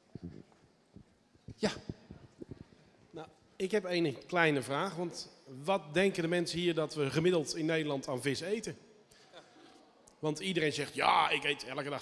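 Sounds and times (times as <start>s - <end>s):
man speaking: 3.2s - 8.8s, 10.2s - 12.0s.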